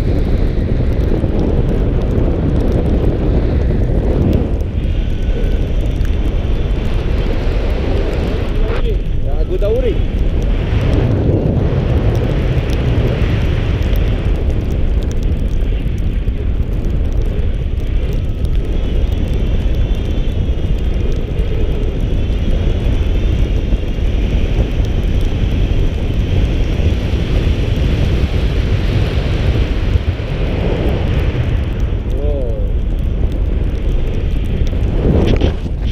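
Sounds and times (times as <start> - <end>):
wind buffeting microphone: 0.0 - 35.9.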